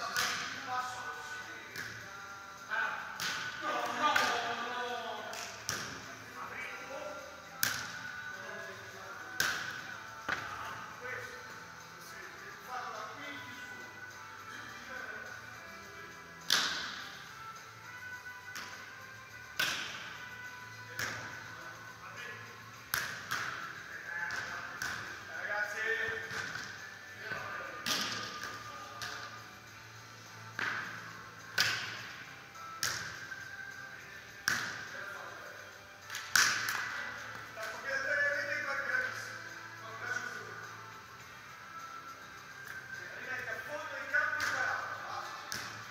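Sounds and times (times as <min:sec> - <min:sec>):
voices: 0:00.0 - 0:16.5
faint music: 0:00.0 - 0:45.9
volleyballs struck hard: 0:16.4 - 0:17.0, 0:19.6 - 0:20.1, 0:27.8 - 0:29.2, 0:31.5 - 0:32.0, 0:36.1 - 0:36.8.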